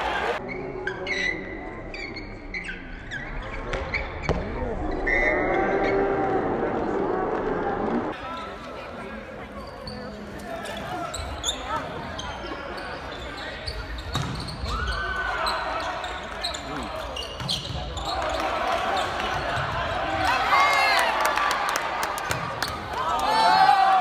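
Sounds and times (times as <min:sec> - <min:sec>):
voices in echoing gym: 0:00.0 - 0:22.0.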